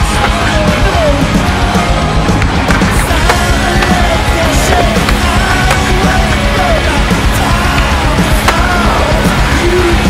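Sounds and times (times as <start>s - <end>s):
loud rock music: 0.0s - 10.0s
skateboard knocking on concrete: 2.4s - 6.8s.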